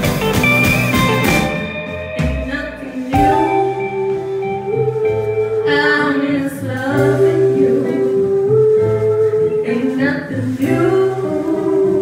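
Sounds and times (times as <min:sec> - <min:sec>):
steady bass line: 0:00.0 - 0:12.0
woman singing lead: 0:02.0 - 0:12.0
female backing vocals: 0:02.3 - 0:12.0.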